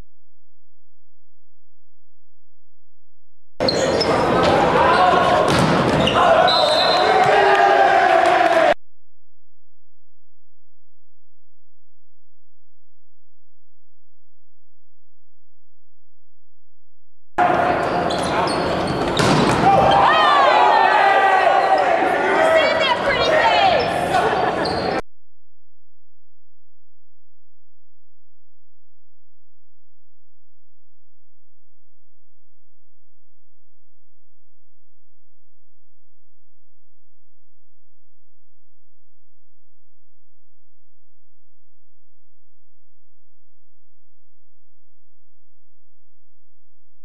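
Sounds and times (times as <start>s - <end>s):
players calling out: 3.6s - 8.8s, 17.4s - 25.0s
volleyball hit smacks: 5.5s - 6.0s, 19.2s - 19.8s.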